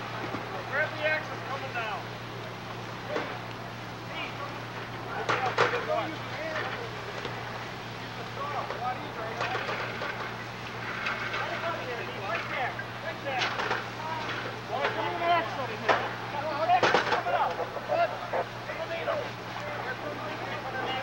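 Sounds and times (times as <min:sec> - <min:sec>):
distant voices calling out: 0:00.0 - 0:21.0
steady low hum: 0:00.0 - 0:21.0.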